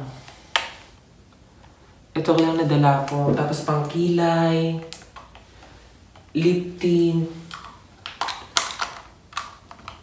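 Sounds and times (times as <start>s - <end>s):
plastic containers clicking together: 7.5s - 10.0s.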